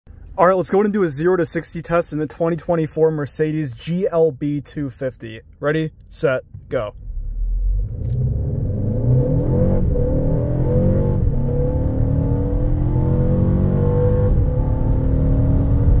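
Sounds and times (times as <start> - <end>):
car engine accelerating: 6.5 - 16.0.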